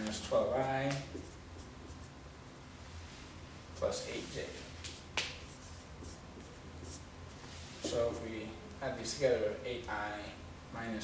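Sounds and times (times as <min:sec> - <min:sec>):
marker writing on whiteboard: 0:00.5 - 0:02.2, 0:04.9 - 0:08.2.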